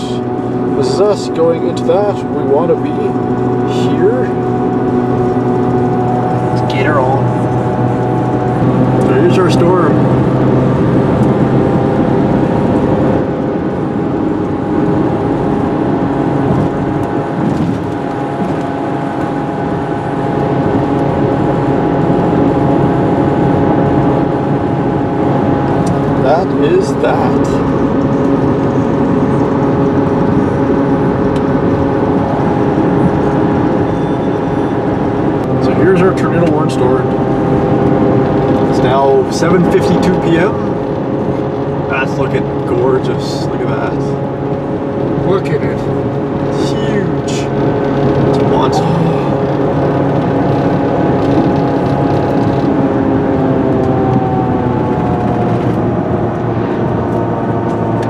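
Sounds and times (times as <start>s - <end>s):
engine and tyre hum: 0.0s - 58.0s
muffled voices: 48.3s - 49.5s.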